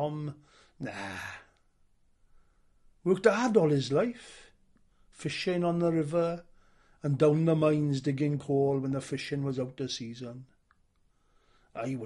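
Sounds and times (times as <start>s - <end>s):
man sighing nah: 0.8s - 1.6s.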